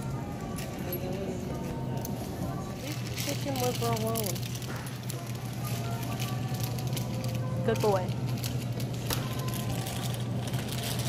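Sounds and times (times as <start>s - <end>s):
faint music playing: 0.0s - 11.0s
low store hum: 0.0s - 11.0s
crackling rustle near microphone: 0.6s - 11.0s.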